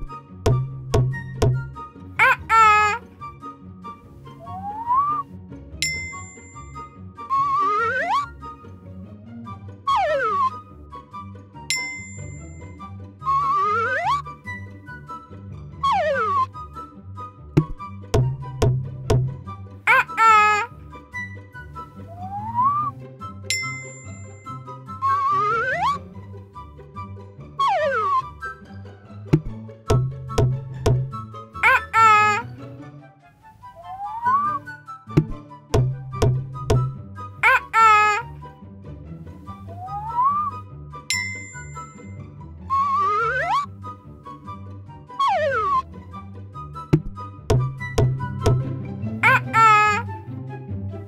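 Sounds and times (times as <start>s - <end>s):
cartoon music with bass line: 0.0s - 51.0s
rising whistle glide: 4.4s - 5.2s, 9.9s - 10.6s, 13.2s - 14.2s, 15.8s - 16.5s, 22.1s - 22.9s, 25.0s - 26.0s, 27.6s - 28.3s, 33.8s - 34.6s, 39.7s - 40.6s, 42.7s - 43.7s, 45.2s - 45.8s
wavering sliding tone: 4.4s - 5.2s, 7.3s - 8.3s, 9.9s - 10.6s, 13.3s - 14.2s, 15.8s - 16.5s, 22.1s - 22.9s, 25.0s - 26.0s, 27.6s - 28.2s, 33.7s - 34.6s, 39.7s - 40.5s, 42.7s - 43.7s, 45.2s - 45.9s
bell-like ding: 5.8s - 6.8s, 11.7s - 12.7s, 23.5s - 24.6s, 41.1s - 42.2s
rising sliding tone: 33.7s - 34.6s.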